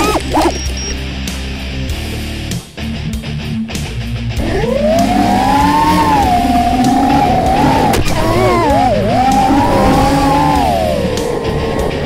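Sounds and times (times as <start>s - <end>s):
quadcopter motors whining: 0.0s - 1.0s, 4.4s - 12.0s.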